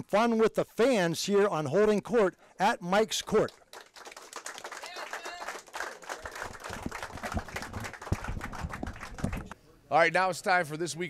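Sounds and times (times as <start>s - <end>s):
audience applauding: 3.3s - 9.6s.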